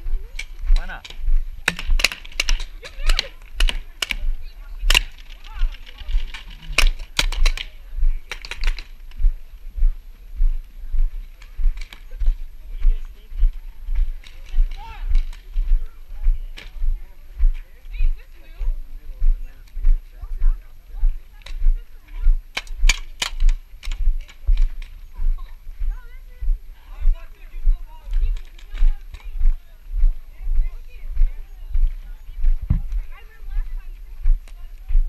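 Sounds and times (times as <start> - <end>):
faint voices: 0.0 - 35.0
sharp cracks: 0.3 - 9.3, 14.0 - 15.9, 22.5 - 25.0
footsteps thudding on dirt: 8.0 - 35.0.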